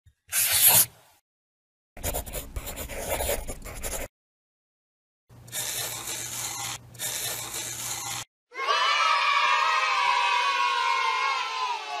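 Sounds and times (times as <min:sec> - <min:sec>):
pen scratching on paper: 0:00.3 - 0:00.9, 0:02.0 - 0:04.1, 0:05.6 - 0:08.2
children cheering: 0:08.5 - 0:12.0.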